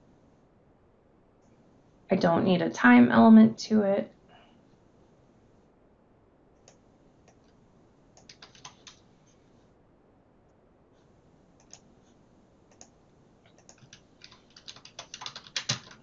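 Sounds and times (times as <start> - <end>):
computer keyboard typing: 8.2 - 9.0, 11.6 - 11.8, 13.5 - 16.0.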